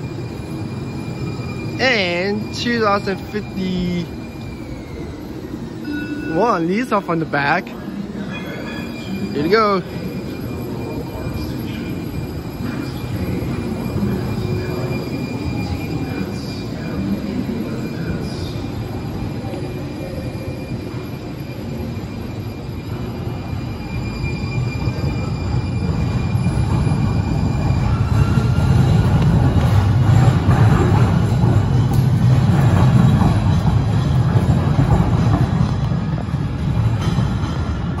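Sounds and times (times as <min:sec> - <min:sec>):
train electric whine: 0:00.0 - 0:38.0
train low rumble: 0:00.0 - 0:38.0.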